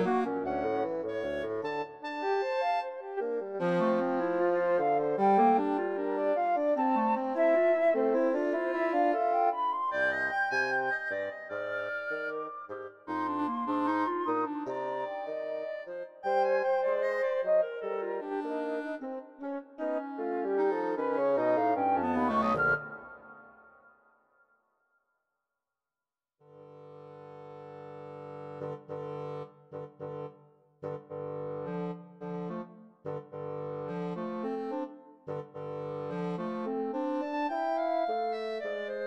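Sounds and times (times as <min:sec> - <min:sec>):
woodwind trio chamber music: 0:00.0 - 0:23.8, 0:26.8 - 0:39.0.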